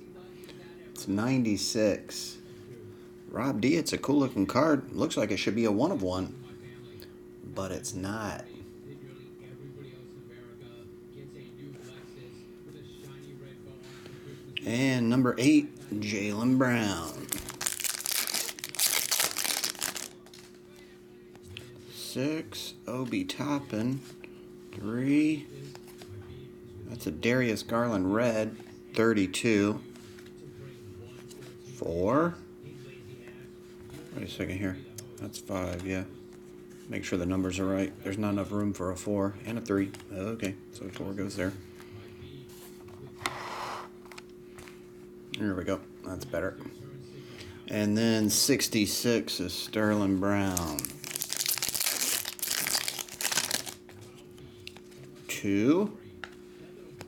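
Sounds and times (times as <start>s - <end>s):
low electrical hum: 0.0s - 57.0s
foil wrapper crinkling: 17.0s - 20.6s, 50.4s - 53.9s
card rustling: 17.0s - 20.9s, 50.0s - 55.1s.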